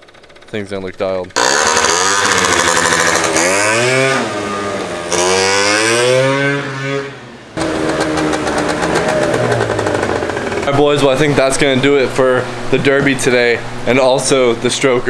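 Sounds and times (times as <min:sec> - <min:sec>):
scooter engine revving: 0:01.3 - 0:12.7.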